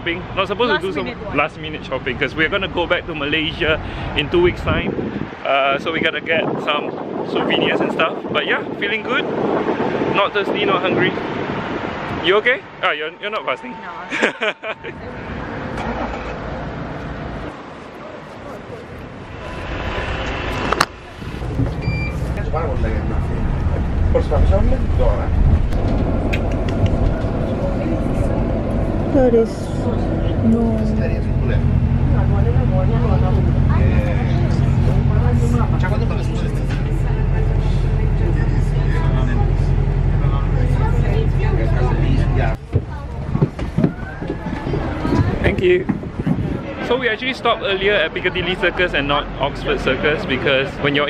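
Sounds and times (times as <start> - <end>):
bus engine rumble: 0.0 - 51.0
busy street traffic: 0.0 - 51.0
voices: 0.0 - 51.0
card reader beep: 21.8 - 22.2.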